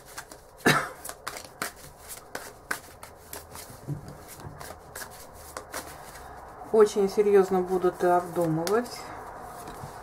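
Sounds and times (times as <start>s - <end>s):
cards being shuffled: 0.0s - 6.4s, 7.7s - 10.0s.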